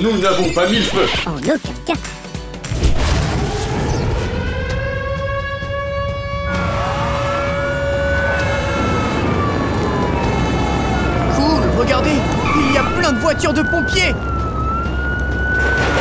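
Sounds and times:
fire engine sirens wailing: 0:03.3 - 0:16.0.

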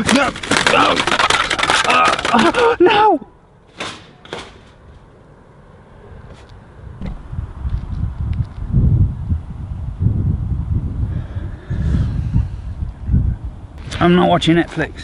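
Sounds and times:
wind buffeting microphone: 0:06.1 - 0:15.0.

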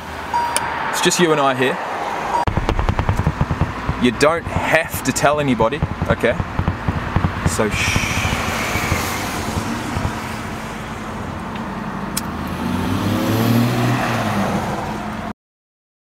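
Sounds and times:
car cabin background noise: 0:02.5 - 0:12.3
vehicle engine revving: 0:02.5 - 0:14.8.

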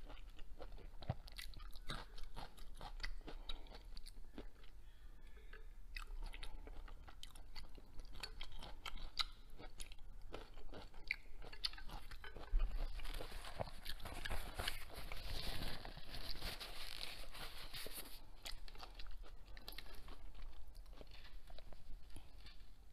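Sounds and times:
person chewing food: 0:00.0 - 0:22.9.

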